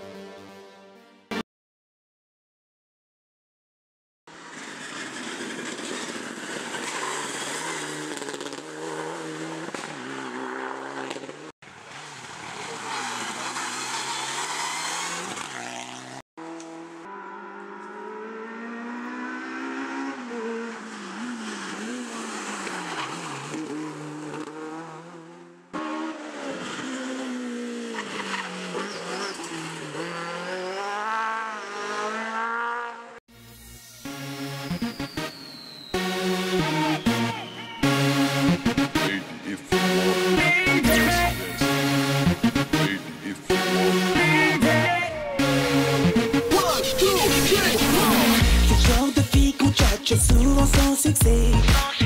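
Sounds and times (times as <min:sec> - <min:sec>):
rally car engines revving: 0:04.3 - 0:33.2, 0:34.5 - 0:51.7.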